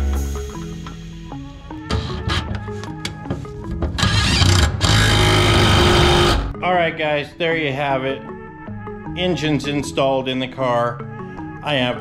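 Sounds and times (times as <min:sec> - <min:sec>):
background music: 0:00.0 - 0:12.0
impact driver running on bolt: 0:04.0 - 0:06.5.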